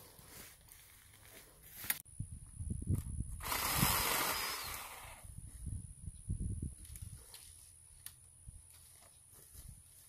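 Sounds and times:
rustling of brush and leaves: 0.0 - 2.0, 6.6 - 10.0.

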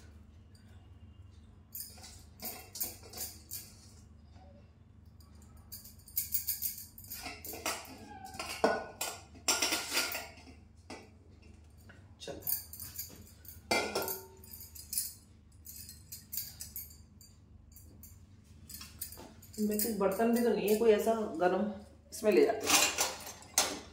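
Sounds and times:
glass bangles jingling: 1.7 - 4.1, 5.2 - 8.6, 12.4 - 21.3.

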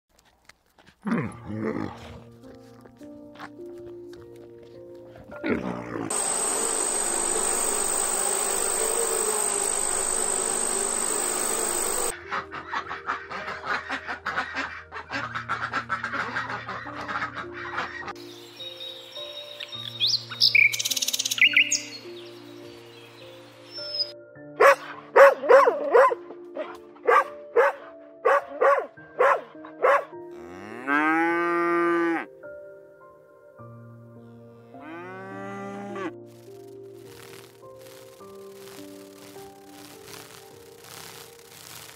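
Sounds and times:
soft background music: 0.6 - 41.9.

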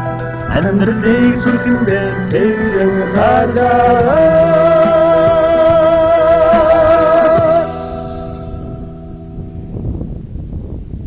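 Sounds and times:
wind buffeting microphone: 0.0 - 11.0
man singing held note: 0.5 - 7.8.

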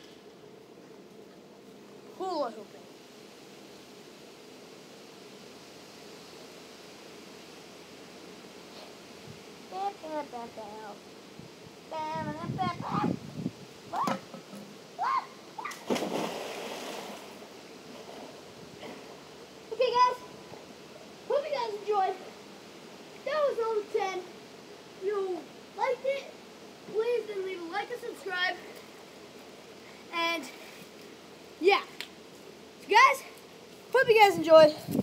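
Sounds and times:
child calling: 11.9 - 13.2, 13.9 - 14.3, 15.0 - 15.8
water noise: 13.8 - 20.6
person crying out: 15.0 - 15.7
splash into pool: 15.6 - 17.4.

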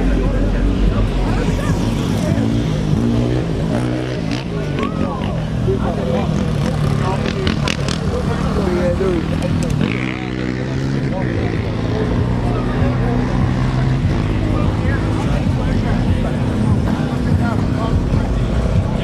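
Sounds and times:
voices talking: 0.0 - 19.0.

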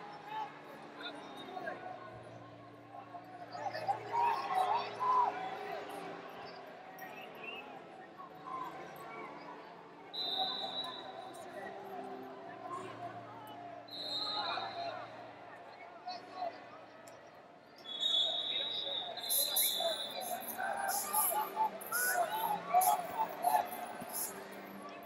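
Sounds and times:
murmur of voices: 0.0 - 25.0
referee whistle blasts: 13.9 - 14.9, 17.8 - 20.4.

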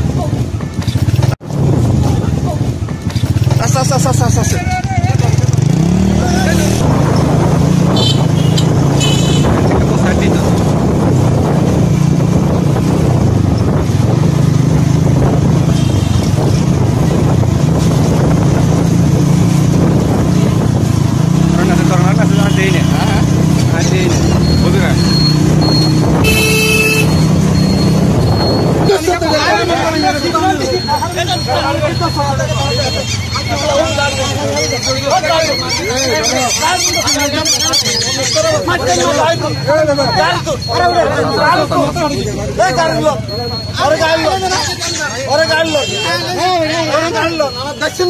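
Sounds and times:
vehicle and road noise: 0.0 - 48.0
car horn toots: 7.9 - 9.8, 26.0 - 28.0, 45.4 - 46.4.

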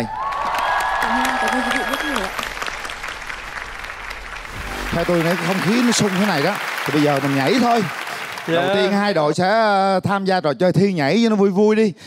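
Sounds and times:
audience applause: 0.0 - 9.4.

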